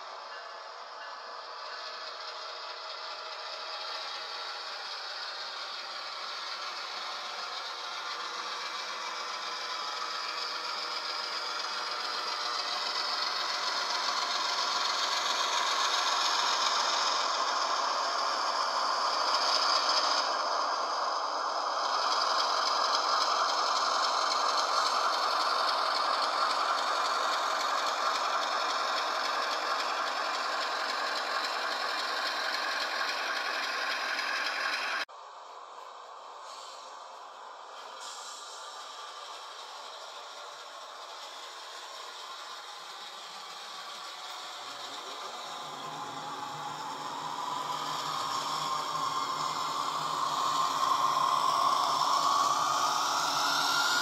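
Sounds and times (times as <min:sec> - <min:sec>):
model train rattling on track: 0:00.0 - 0:54.0.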